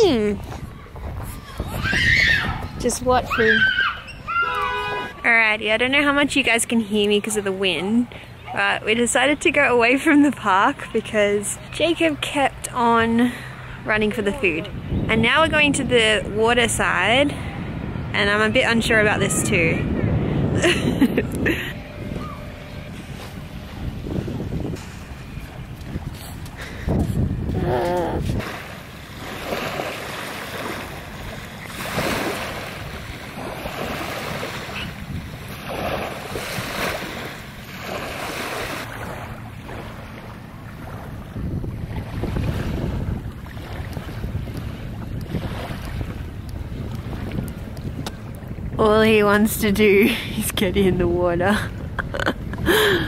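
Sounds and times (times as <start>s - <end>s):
wind buffeting microphone: 0.0s - 53.0s
waves lapping on sandy shore: 4.5s - 53.0s.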